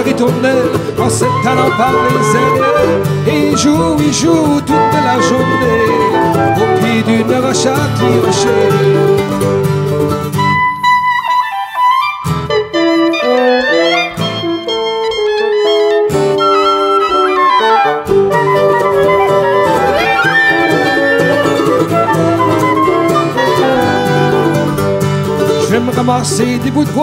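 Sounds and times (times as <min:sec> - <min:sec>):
acoustic guitar: 0:00.0 - 0:27.0
mandolin: 0:00.0 - 0:27.0
clarinet-led woodwind duet: 0:01.0 - 0:09.6, 0:10.4 - 0:25.0
low accompaniment: 0:12.5 - 0:25.9.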